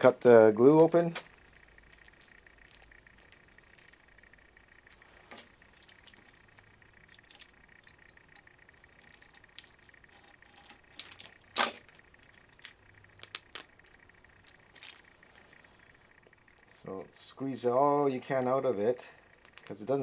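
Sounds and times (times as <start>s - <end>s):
foil crackle: 0.0s - 16.0s.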